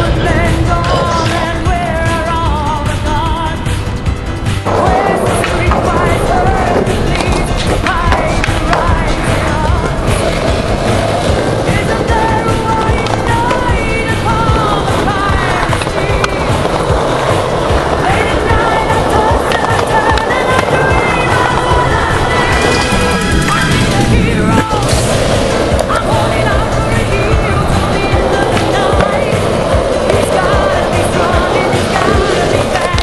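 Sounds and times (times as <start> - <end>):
music track: 0.0 - 33.0
skateboard wheels rolling on concrete: 0.0 - 33.0
skateboard popping and landing: 4.6 - 33.0.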